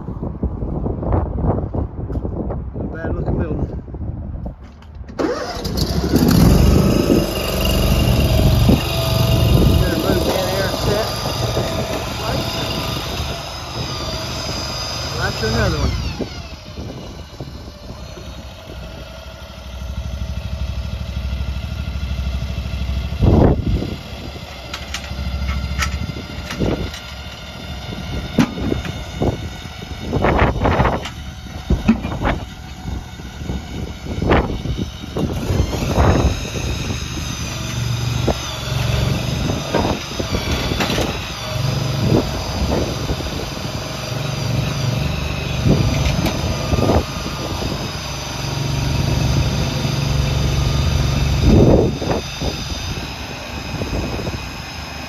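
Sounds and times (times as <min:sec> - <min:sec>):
forklift engine humming: 0:05.1 - 0:55.0
high-pitched whine: 0:05.6 - 0:55.0
metal clanks and knocks: 0:31.8 - 0:32.4.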